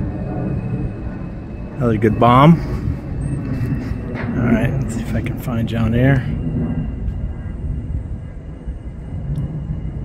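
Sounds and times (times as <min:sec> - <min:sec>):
low rumble: 0:00.0 - 0:10.0
model airplane droning overhead: 0:00.0 - 0:10.0.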